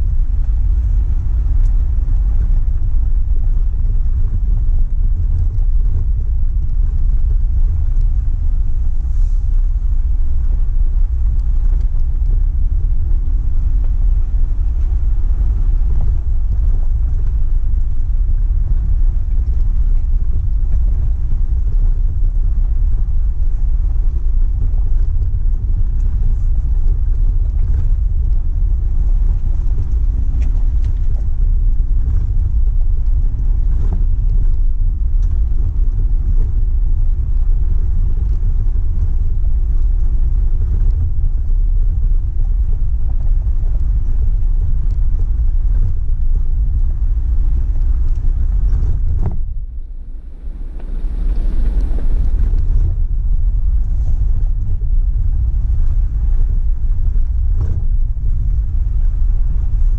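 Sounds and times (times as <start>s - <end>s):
vehicle engine rumble: 0.0s - 59.9s
tyres on loose gravel: 24.6s - 56.0s.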